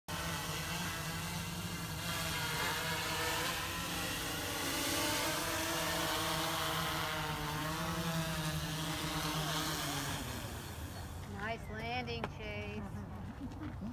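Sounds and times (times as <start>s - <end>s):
drone propellers buzzing: 0.1s - 13.1s.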